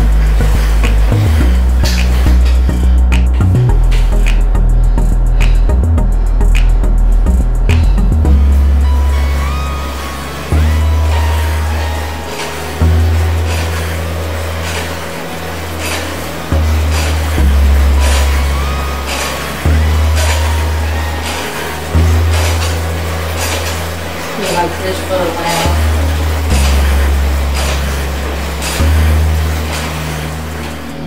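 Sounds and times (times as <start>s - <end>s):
light regular beat: 0.0s - 9.4s
music with deep bass line: 0.0s - 31.0s.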